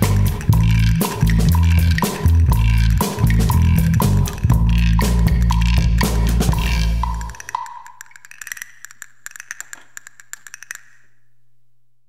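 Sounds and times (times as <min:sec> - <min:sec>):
light percussion ticks and rattles: 0:00.0 - 0:11.2.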